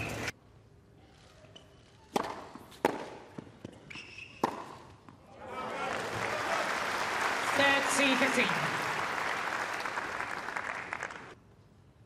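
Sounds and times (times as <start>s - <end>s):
rackets striking tennis ball: 1.6s - 5.2s
ball bouncing on hard court: 2.1s - 4.8s
crowd applause: 5.4s - 11.4s.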